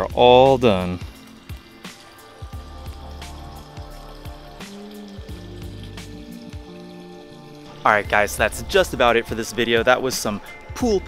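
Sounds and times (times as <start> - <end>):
background music with a beat: 0.0 - 11.0
waterfall splashing into pond: 0.0 - 11.0.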